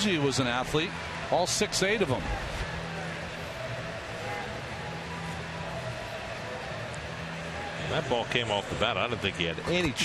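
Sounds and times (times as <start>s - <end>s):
crowd murmur: 2.2s - 8.8s.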